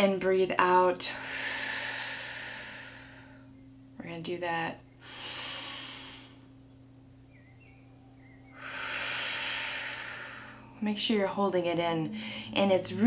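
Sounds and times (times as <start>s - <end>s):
woman breathing in through nose: 1.2s - 3.4s, 5.0s - 6.5s, 8.5s - 10.8s
woman breathing out: 1.2s - 3.4s, 5.0s - 6.5s, 8.5s - 10.8s, 12.1s - 12.6s.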